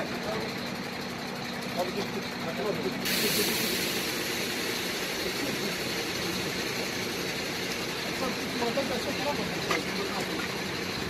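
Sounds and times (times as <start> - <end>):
engine running steadily: 0.0 - 11.0
broad hiss: 3.0 - 8.2.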